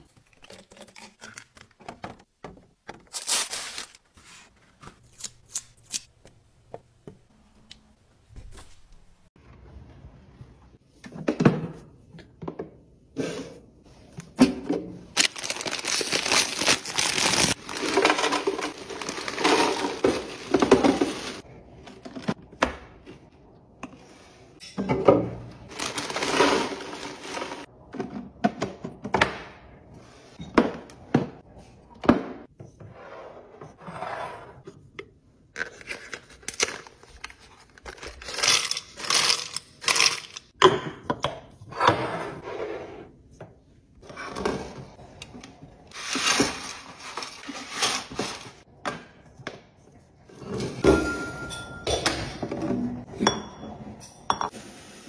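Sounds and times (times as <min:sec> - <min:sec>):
crisps rattling into a container: 0:15.2 - 0:21.4, 0:25.7 - 0:27.6.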